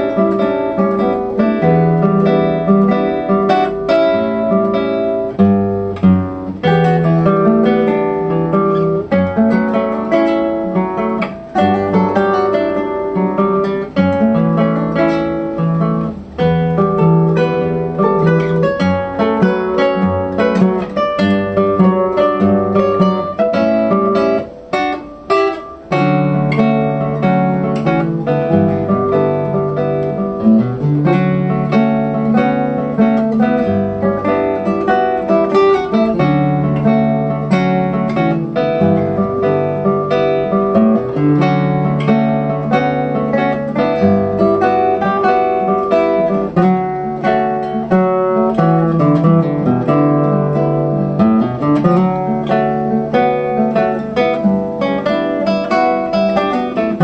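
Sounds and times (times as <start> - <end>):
classical guitar duet: 0.0 - 57.0.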